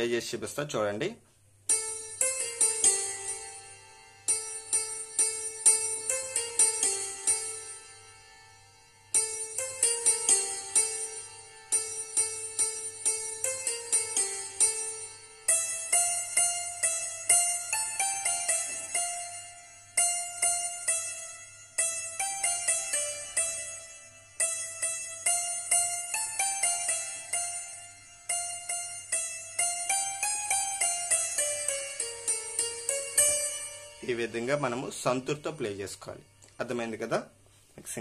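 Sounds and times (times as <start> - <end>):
hammered dulcimer melody notes: 1.6 - 37.6.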